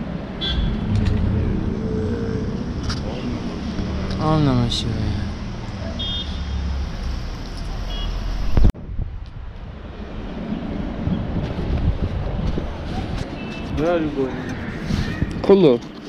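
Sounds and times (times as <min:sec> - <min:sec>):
traffic engine rumble: 0:00.0 - 0:16.0.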